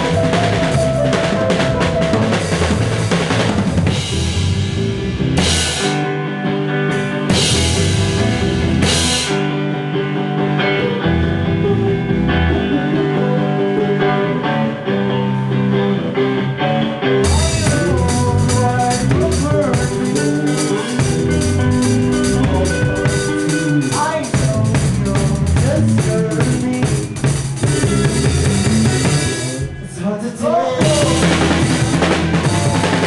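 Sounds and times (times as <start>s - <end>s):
busy drumming: 0.0s - 6.1s, 6.9s - 9.5s, 17.2s - 30.0s, 30.8s - 33.0s
rock band playing live: 0.0s - 33.0s.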